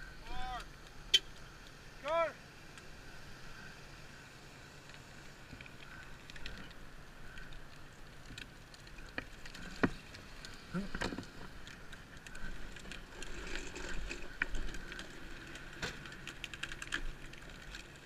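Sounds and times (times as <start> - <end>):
bicycle rattling over rough ground: 0.0 - 18.0.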